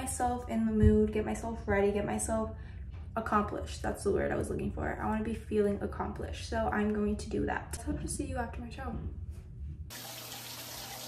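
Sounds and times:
shower water spraying on tiles: 9.9s - 11.0s.

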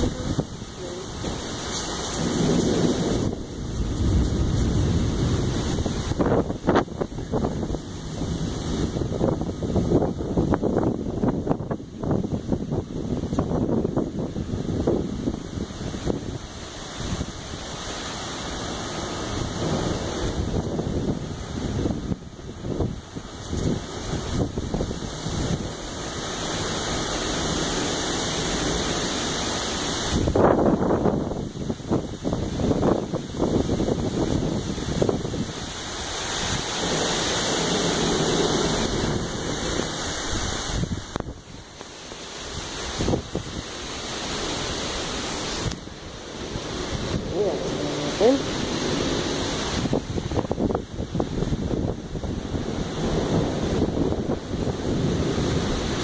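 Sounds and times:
heavy rain pouring: 0.0s - 56.0s
wind buffeting microphone: 0.0s - 56.0s.

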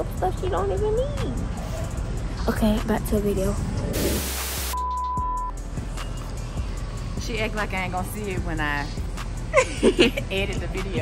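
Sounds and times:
background music: 0.0s - 11.0s
steady test-tone beep: 4.7s - 5.6s.

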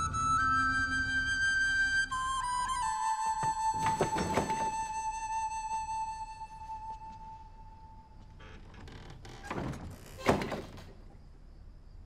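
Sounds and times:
held music note: 0.0s - 8.0s
rush of door movement: 3.4s - 4.9s, 8.3s - 11.1s
wooden doors thunking shut: 3.4s - 4.9s, 8.6s - 11.1s.

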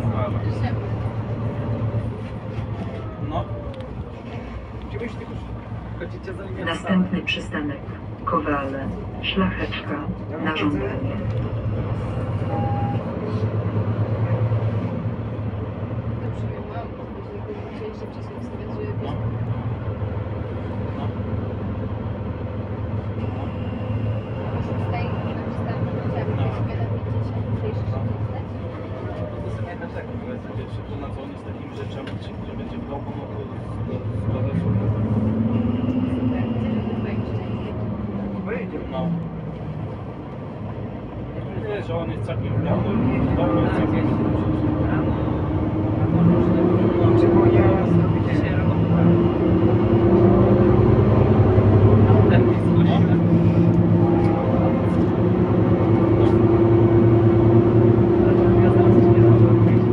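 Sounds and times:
bus engine drone: 0.0s - 59.9s.

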